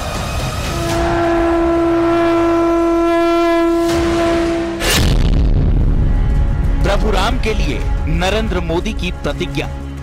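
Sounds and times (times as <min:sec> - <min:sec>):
conch shell blown: 0:00.7 - 0:05.0.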